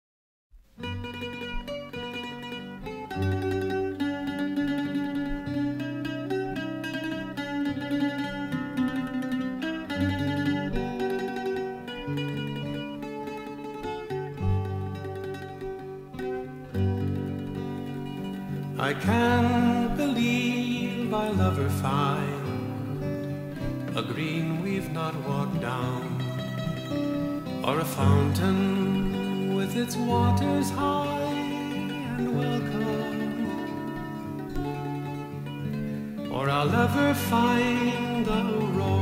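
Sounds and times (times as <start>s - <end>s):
plucked string folk melody: 0.6s - 39.0s.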